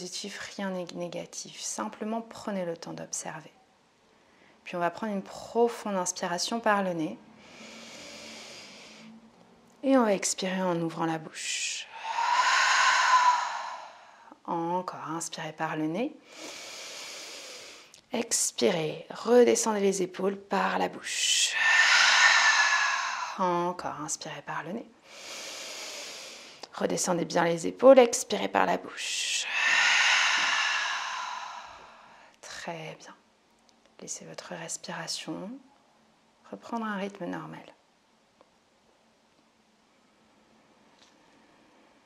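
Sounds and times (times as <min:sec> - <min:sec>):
woman exhaling deeply: 0:11.8 - 0:14.4, 0:21.5 - 0:23.5, 0:29.2 - 0:32.3.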